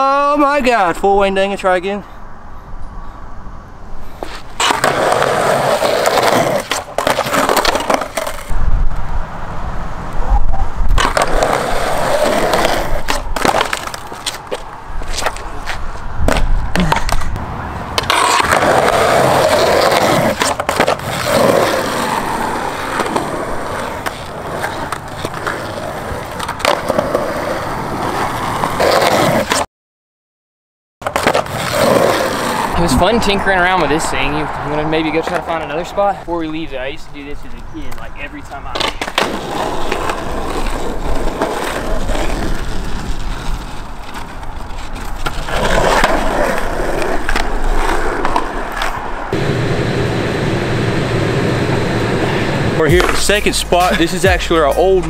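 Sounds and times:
skateboard wheels rolling on concrete: 0.0s - 29.7s, 31.0s - 55.0s
skateboard deck clacking: 4.2s - 8.5s, 10.9s - 17.4s, 18.0s - 29.6s, 31.0s - 32.8s, 38.7s - 49.5s.

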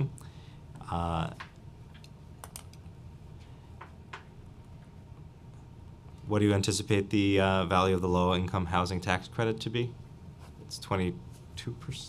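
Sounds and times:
steady low hum: 0.0s - 12.0s
laptop keyboard keystrokes: 1.4s - 2.8s.

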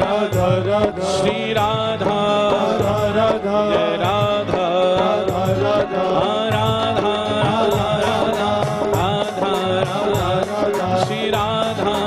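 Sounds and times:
harmonium: 0.0s - 12.0s
tabla: 0.0s - 12.0s.

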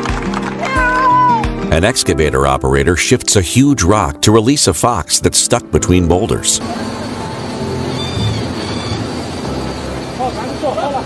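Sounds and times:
excavator engine rumbling: 6.0s - 11.0s.

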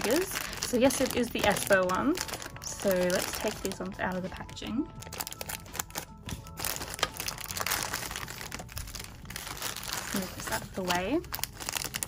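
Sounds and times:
plastic bags crinkling: 0.0s - 12.0s
scissors cutting plastic: 5.0s - 12.0s.

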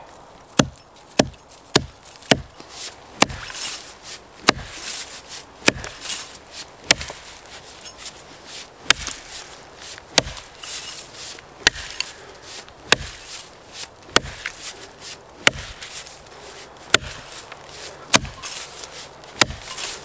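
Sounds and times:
axe chopping wood: 0.5s - 3.8s, 4.4s - 7.2s, 8.8s - 10.8s, 11.6s - 12.2s, 12.8s - 16.1s, 16.9s - 18.6s, 19.3s - 20.0s.

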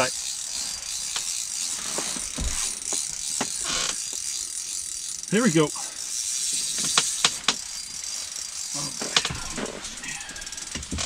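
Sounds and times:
fishing reel ratcheting: 0.0s - 11.0s
sharp clicks and knocks: 1.0s - 4.2s, 6.6s - 7.7s, 8.9s - 11.0s.

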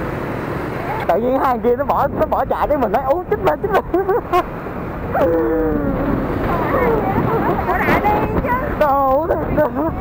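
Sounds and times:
motorbike wind and road noise: 0.0s - 10.0s.

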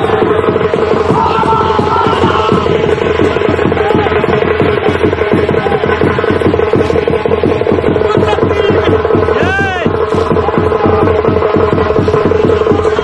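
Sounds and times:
rapid drumbeats: 0.0s - 13.0s.

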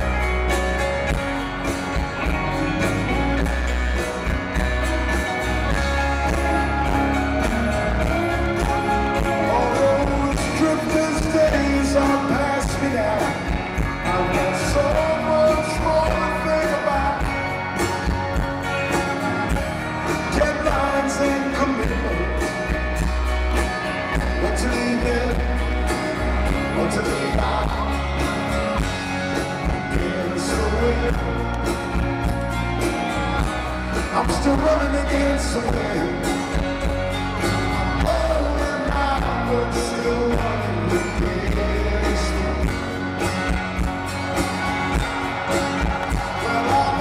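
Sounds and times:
live rock band playing: 0.0s - 47.0s
person singing: 6.1s - 18.0s, 24.2s - 28.6s, 29.6s - 31.8s, 37.7s - 43.3s, 45.5s - 47.0s.

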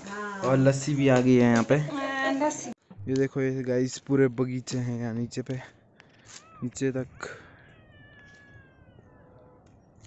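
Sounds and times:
animal whining call: 7.6s - 9.7s.

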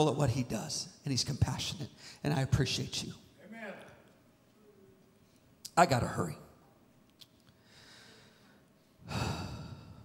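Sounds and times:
man breathing: 7.5s - 10.0s
man sighing: 9.0s - 10.0s.

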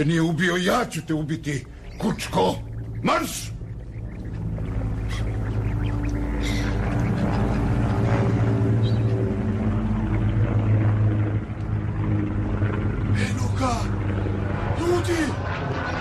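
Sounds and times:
low droning tones: 0.0s - 16.0s.

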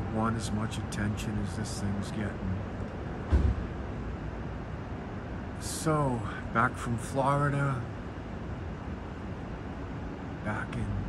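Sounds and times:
low thump: 3.2s - 3.8s.

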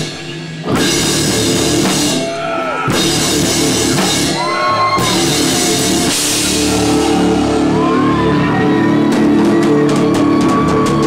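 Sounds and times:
crashing drum and cymbal hits: 0.0s - 11.0s
rock band playing live: 0.0s - 11.0s
shouted vocal: 2.2s - 3.1s, 4.3s - 11.0s.

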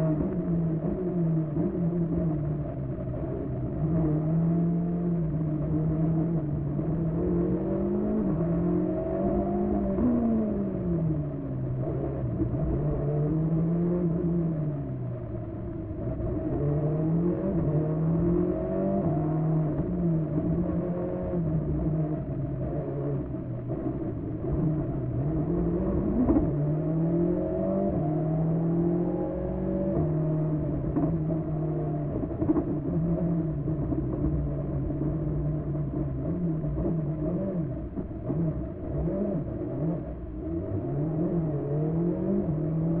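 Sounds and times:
rally car engine from inside: 0.0s - 43.0s.

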